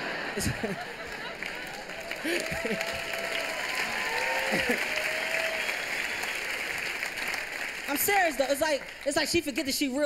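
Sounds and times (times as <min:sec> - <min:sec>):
audience laughing: 0:00.0 - 0:03.4, 0:04.2 - 0:05.2
audience applause: 0:00.0 - 0:09.8.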